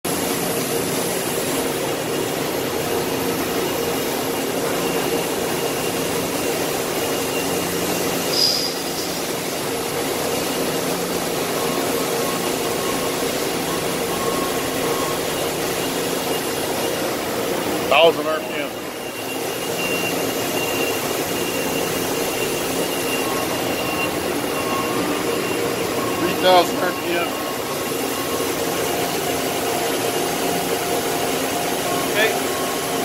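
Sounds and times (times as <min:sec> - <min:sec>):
machine spindle hum and whine: 0:00.1 - 0:33.0
brief high squeak: 0:08.3 - 0:09.3.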